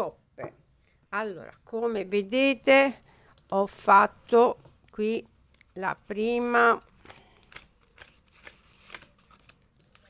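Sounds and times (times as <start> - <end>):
cards rustling: 5.4 - 10.0.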